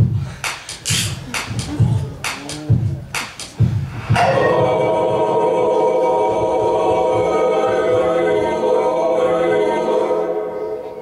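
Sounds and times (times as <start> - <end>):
choir holding a chord: 4.1 - 11.0.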